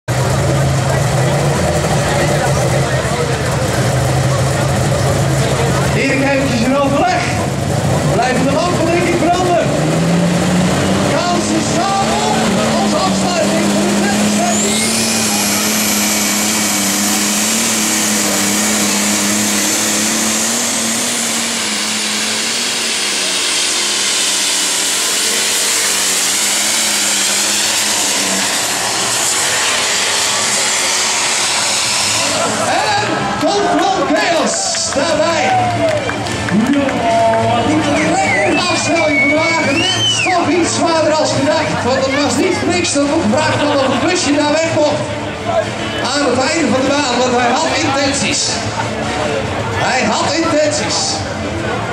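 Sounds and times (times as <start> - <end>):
diesel engine revving: 0.0 - 51.9
high turbo whine: 0.1 - 51.9.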